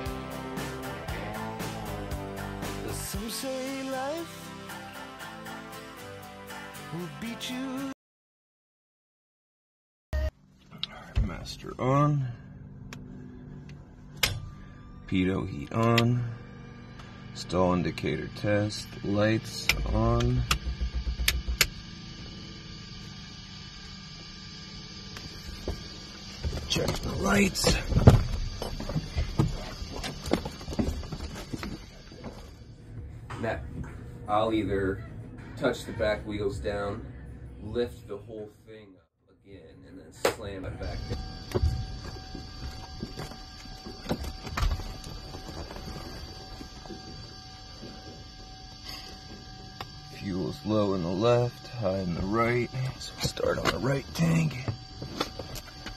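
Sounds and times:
steady high whine: 0.0s - 7.6s, 10.2s - 55.9s
low thumps: 19.6s - 22.4s
knocks and thumps in small plane: 19.7s - 22.0s, 25.6s - 31.9s.

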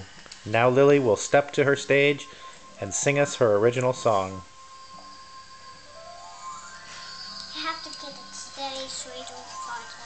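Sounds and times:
girl singing softly: 7.4s - 10.0s.

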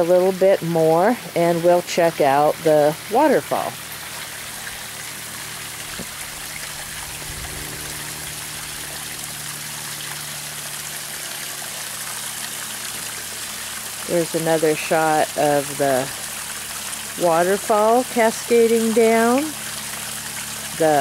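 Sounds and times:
water trickling over stones: 0.0s - 21.0s.

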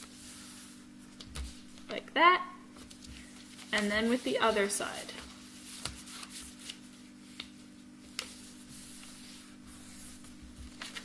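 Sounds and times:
paper rustling as folded: 2.8s - 11.0s.

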